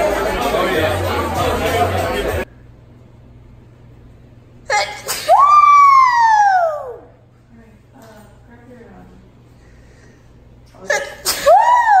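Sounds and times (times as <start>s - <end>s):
person crying out: 4.7s - 7.1s.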